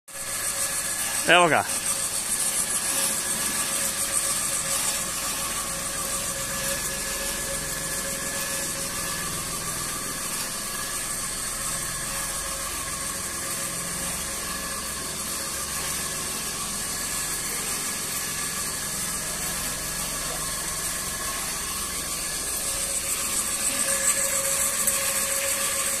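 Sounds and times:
rotary drum sieve running: 0:00.2 - 0:26.0.

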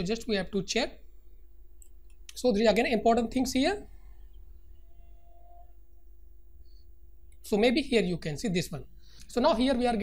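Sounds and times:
faint steady tone: 0:00.0 - 0:10.0
low background hum: 0:00.0 - 0:10.0.

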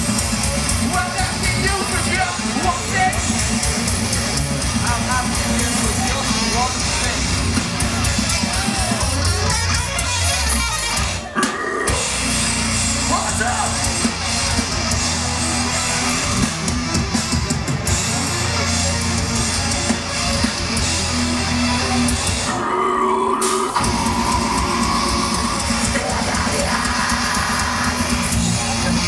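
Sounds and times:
live heavy metal band: 0:00.0 - 0:29.0.

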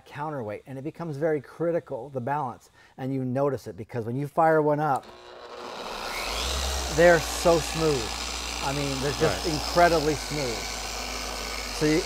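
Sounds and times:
paint polisher motor spinning up: 0:05.0 - 0:12.0.

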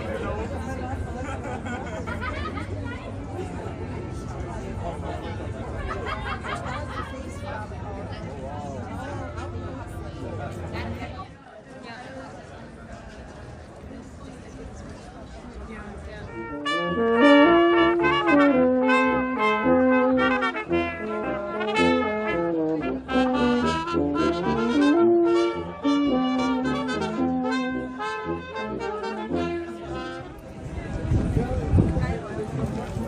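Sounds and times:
brass band playing held notes: 0:16.2 - 0:30.8.

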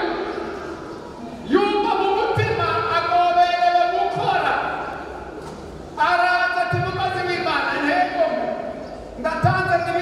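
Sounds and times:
man preaching into a microphone: 0:01.4 - 0:05.0, 0:06.0 - 0:10.0.

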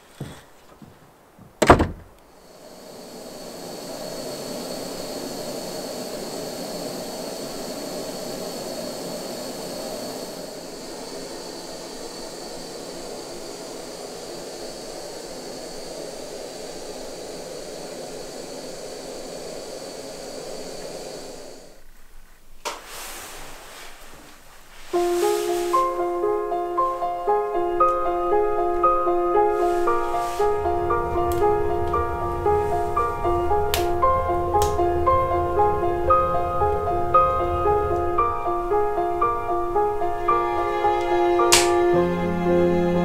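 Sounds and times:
wooden door shutting: 0:01.4 - 0:02.2, 0:41.5 - 0:41.8
steady rushing noise: 0:01.8 - 0:21.9, 0:24.7 - 0:43.0
faint high whine: 0:01.8 - 0:22.4, 0:24.1 - 0:43.0.

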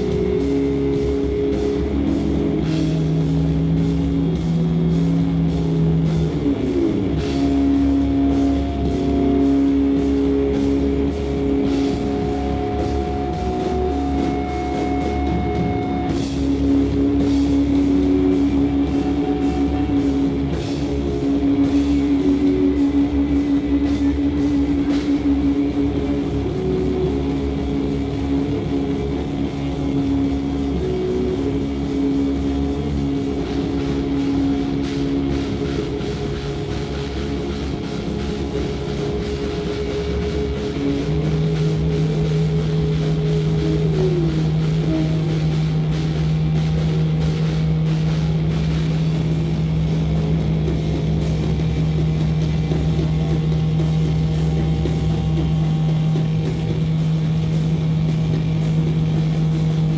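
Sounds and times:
doom metal band playing: 0:00.0 - 0:59.9.

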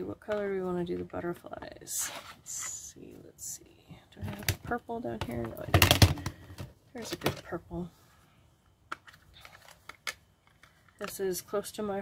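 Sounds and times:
plastic case clicks: 0:05.2 - 0:07.4.

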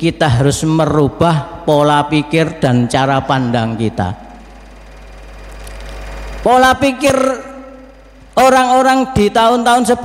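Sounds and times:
low steady rumble: 0:01.1 - 0:09.6.

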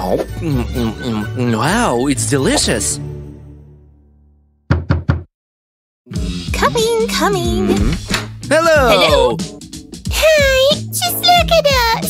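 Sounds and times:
background music: 0:00.0 - 0:04.4, 0:06.1 - 0:12.0
knocks on a door: 0:04.7 - 0:05.3.

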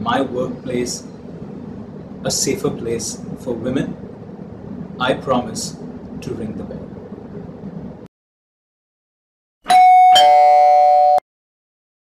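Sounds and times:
two-note doorbell chime: 0:09.6 - 0:11.2.

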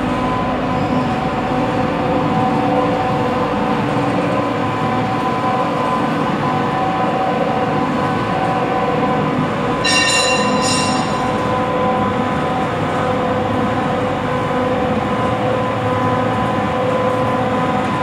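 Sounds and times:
high-pitched squeal: 0:09.8 - 0:11.6.

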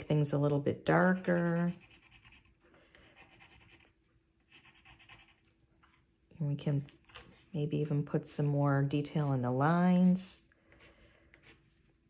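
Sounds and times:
pencil scratching on paper: 0:00.9 - 0:05.5.

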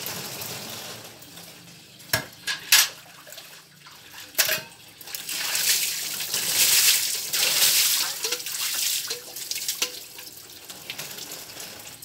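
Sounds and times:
water sloshing in metal bucket: 0:02.5 - 0:10.3.

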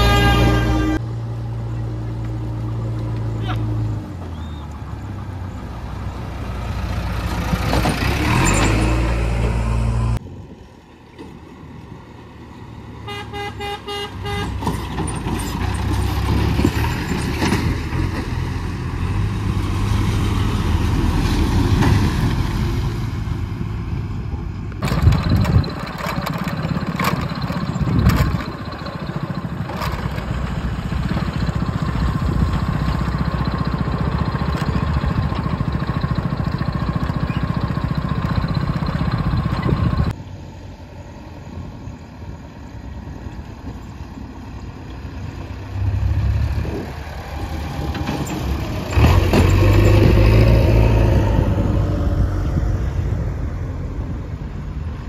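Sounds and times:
vehicle horn pulses: 0:00.0 - 0:01.1, 0:13.1 - 0:14.7
heavy diesel engines: 0:00.0 - 0:55.0
road noise: 0:00.0 - 0:55.0.

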